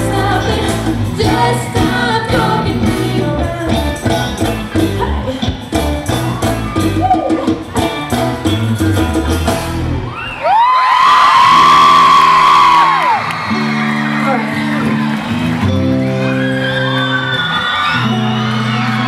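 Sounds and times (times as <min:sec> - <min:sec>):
live band playing: 0:00.0 - 0:10.3, 0:11.3 - 0:19.0
crowd screaming and whooping: 0:04.5 - 0:19.0
scattered cheering: 0:10.0 - 0:19.0.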